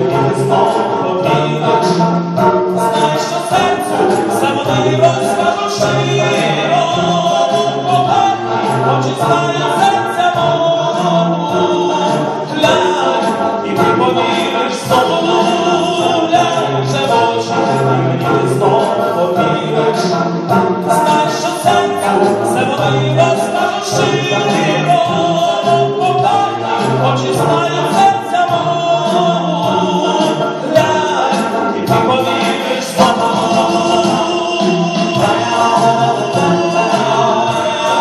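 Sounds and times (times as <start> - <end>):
male a cappella group singing: 0.0 - 38.0.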